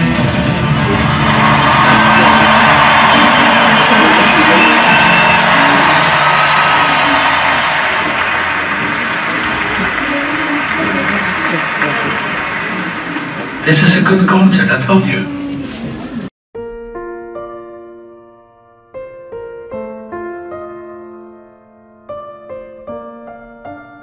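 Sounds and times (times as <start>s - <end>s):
audience cheering and whooping: 0.0s - 13.8s.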